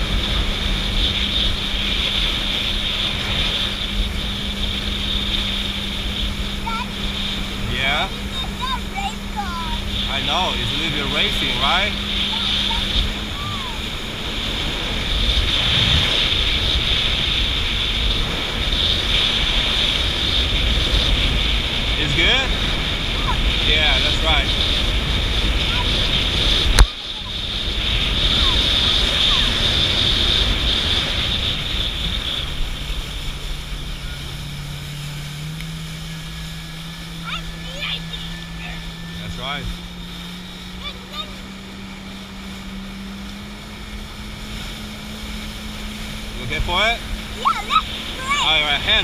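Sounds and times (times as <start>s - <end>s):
jet ski engine: 0.0s - 49.0s
water rushing: 0.0s - 49.0s
wind on microphone: 0.0s - 49.0s.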